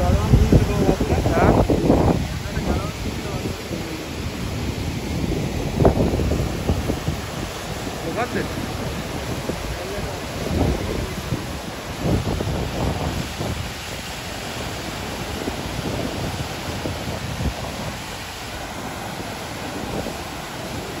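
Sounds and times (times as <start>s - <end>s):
water rushing through spillway: 0.0s - 21.0s
wind buffeting microphone: 0.0s - 21.0s.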